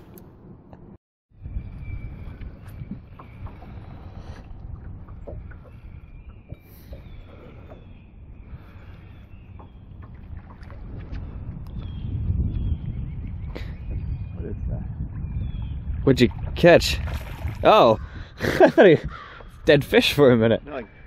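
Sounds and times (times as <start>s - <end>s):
water around boat: 0.0s - 21.0s
wind: 0.0s - 21.0s.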